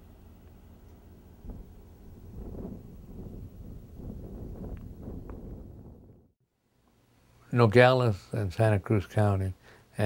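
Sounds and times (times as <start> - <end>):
wind buffeting microphone: 1.4 - 6.4.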